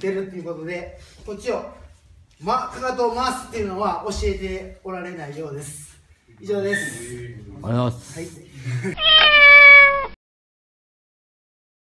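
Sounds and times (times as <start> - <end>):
cat meow: 9.0 - 10.2.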